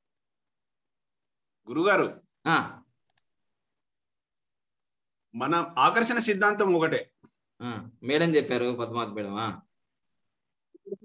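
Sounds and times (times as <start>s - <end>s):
person speaking over video call: 5.2s - 10.2s.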